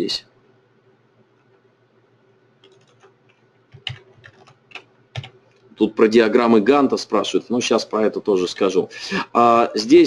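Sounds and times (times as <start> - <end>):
faint steady hum: 0.0 - 10.0
computer keyboard keystrokes: 2.6 - 5.4.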